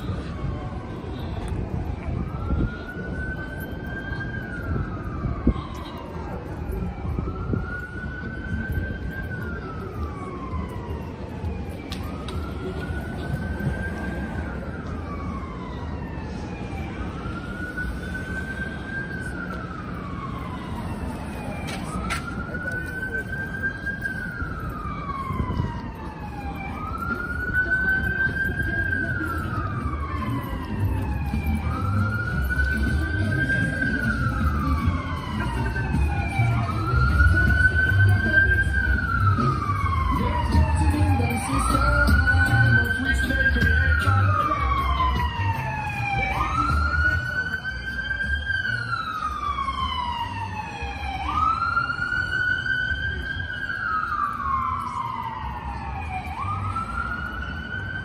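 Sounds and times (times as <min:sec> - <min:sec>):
emergency vehicle siren wailing: 0:00.0 - 0:58.0
street traffic rumble: 0:00.0 - 0:58.0.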